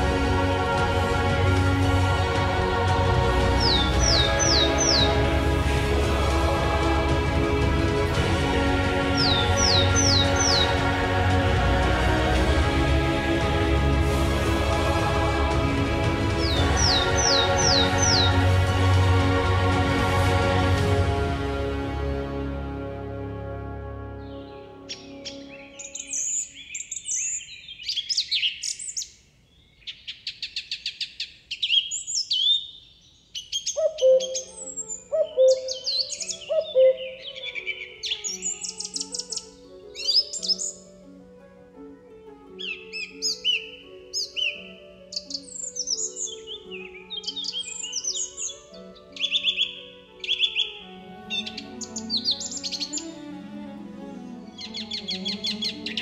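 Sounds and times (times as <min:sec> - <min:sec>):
birds chirping and trilling: 0:00.0 - 0:19.4, 0:23.9 - 0:56.0
soft music with held notes: 0:00.0 - 0:27.2, 0:33.9 - 0:56.0.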